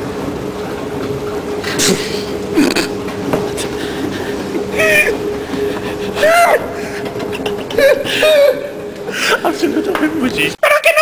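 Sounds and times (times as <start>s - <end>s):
steady hum: 0.0s - 10.6s.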